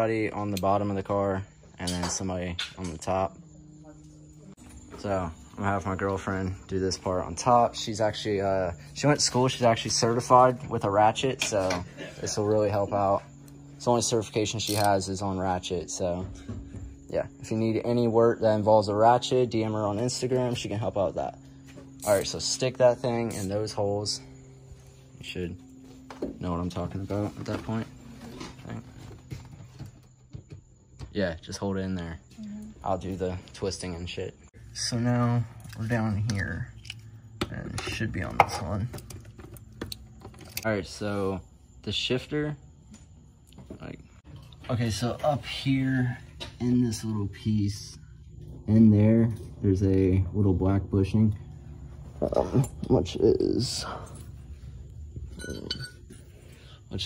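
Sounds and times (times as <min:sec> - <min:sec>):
metallic clink of small parts: 0:14.6 - 0:15.0.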